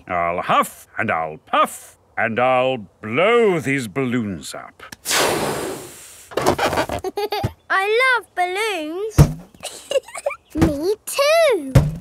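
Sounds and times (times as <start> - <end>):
child speaking: 7.7 - 9.2, 10.5 - 11.8.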